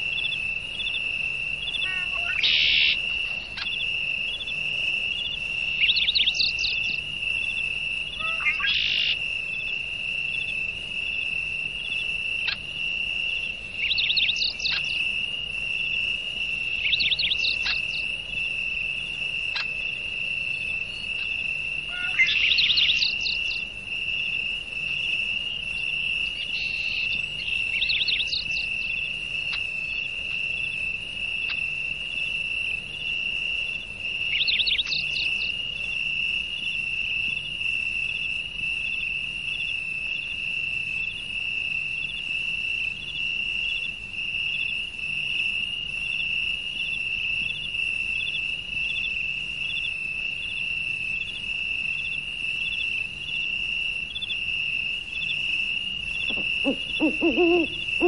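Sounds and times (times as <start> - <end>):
insects trilling: 0.0 - 58.0.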